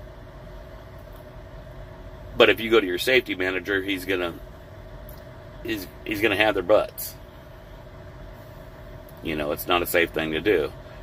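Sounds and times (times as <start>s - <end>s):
truck engine idling hum: 0.0s - 11.0s.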